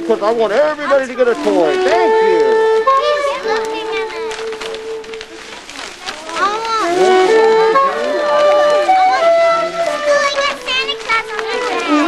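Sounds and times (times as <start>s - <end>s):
children shouting and squealing: 1.0s - 4.7s, 6.2s - 12.0s
soprano saxophone long note: 1.4s - 5.2s, 6.8s - 10.2s.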